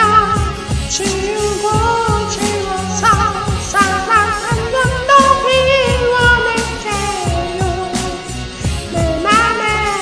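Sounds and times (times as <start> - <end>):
karaoke backing track: 0.0 - 10.0
person singing ballad: 0.0 - 10.0.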